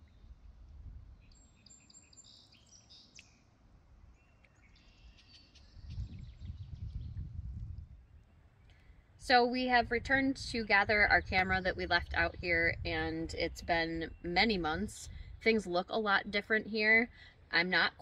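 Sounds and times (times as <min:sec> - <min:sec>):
small birds chirping and trilling: 0:01.1 - 0:03.5, 0:04.1 - 0:07.4
low rumble: 0:05.8 - 0:08.1.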